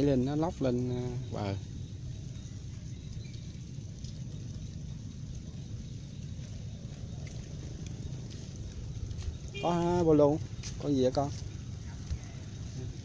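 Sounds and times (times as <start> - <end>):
footsteps on wet path: 2.6 - 13.0.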